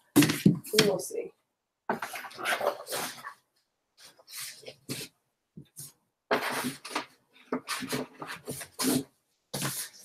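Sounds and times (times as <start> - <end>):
books and cardboard rustling: 1.9 - 5.1, 5.7 - 10.0.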